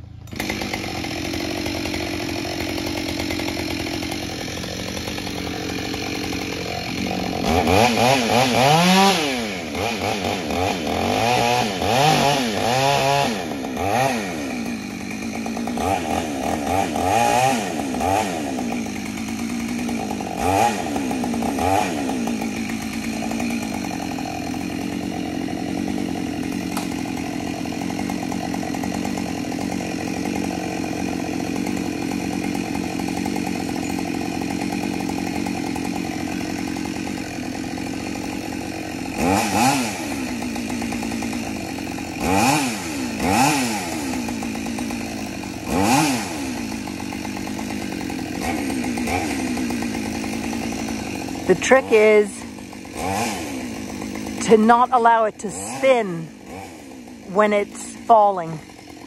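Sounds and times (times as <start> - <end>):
chainsaw revving: 0.0 - 59.0.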